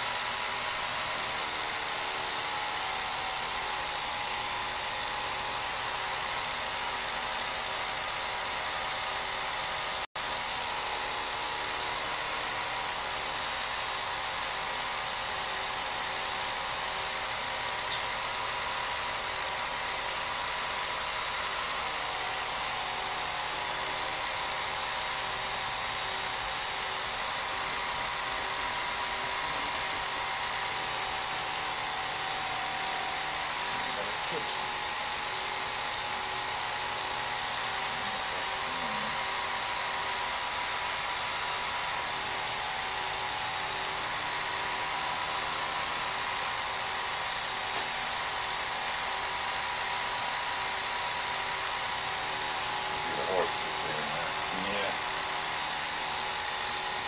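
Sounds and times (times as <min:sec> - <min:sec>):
film projector whirring: 0:00.0 - 0:57.0.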